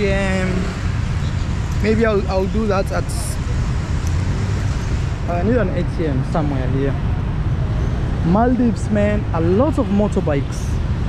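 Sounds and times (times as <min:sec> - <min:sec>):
car and motorbike engines rumbling: 0:00.0 - 0:11.0.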